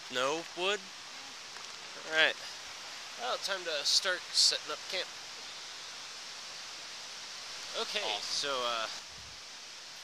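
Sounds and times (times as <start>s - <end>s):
creek water rushing: 0.0s - 10.0s
man speaking: 3.2s - 5.1s, 7.7s - 9.0s.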